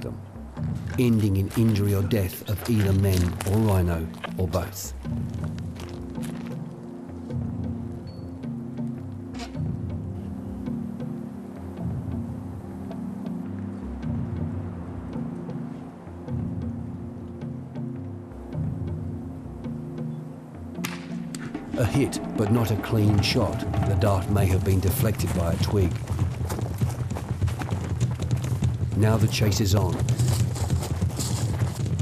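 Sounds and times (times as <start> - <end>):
low pulsing background music: 0.0 - 32.0
running footsteps on dry leaves: 0.7 - 6.7, 22.4 - 32.0.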